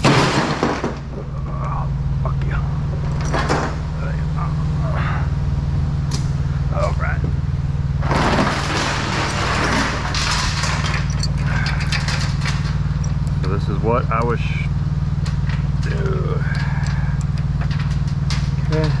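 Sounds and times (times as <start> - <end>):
low engine hum: 0.8 - 19.0
metal chain clinking: 8.3 - 14.4, 15.2 - 19.0.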